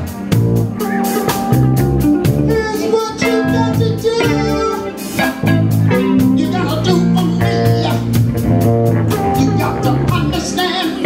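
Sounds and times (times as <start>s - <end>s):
soul band playing: 0.0s - 11.0s
steady drum beat: 0.0s - 11.0s
man singing into microphone: 2.5s - 5.0s, 6.4s - 8.1s, 9.2s - 11.0s.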